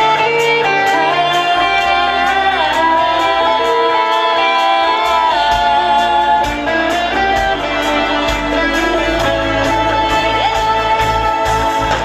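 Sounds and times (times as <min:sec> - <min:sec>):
live pop-rock band playing: 0:00.0 - 0:12.0.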